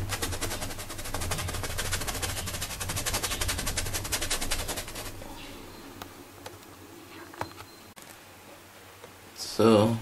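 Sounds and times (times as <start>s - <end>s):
rapid even tapping: 0.0s - 5.2s
low steady hum: 0.0s - 10.0s.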